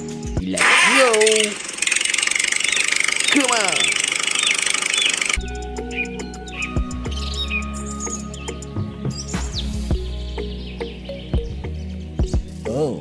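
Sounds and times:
background music: 0:00.0 - 0:01.4, 0:05.4 - 0:13.0
birds chirping: 0:00.0 - 0:13.0
toy electric motor whirring: 0:00.6 - 0:05.4.

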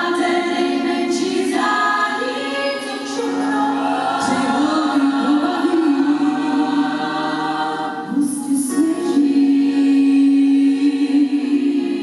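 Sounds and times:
woman singing into microphone: 0:00.0 - 0:07.1, 0:07.9 - 0:12.0
women's choir harmonies: 0:00.0 - 0:12.0.

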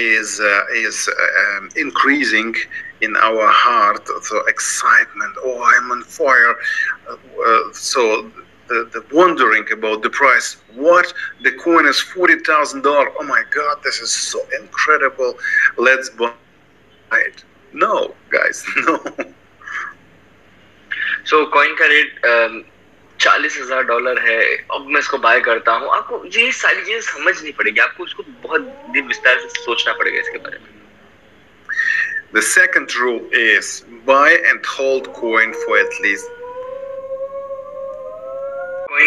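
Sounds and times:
man speaking: 0:00.0 - 0:16.4, 0:17.1 - 0:19.9, 0:20.9 - 0:22.6, 0:23.2 - 0:30.8, 0:31.7 - 0:36.3
faint call connection hum: 0:00.0 - 0:39.0
held tone rising in pitch: 0:28.3 - 0:30.6.

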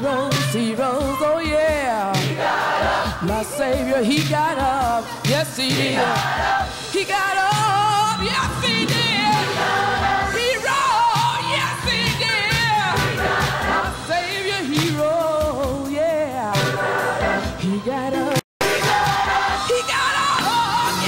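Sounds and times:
woman singing gospel with vibrato: 0:00.0 - 0:21.0
musical accompaniment: 0:02.2 - 0:21.0.

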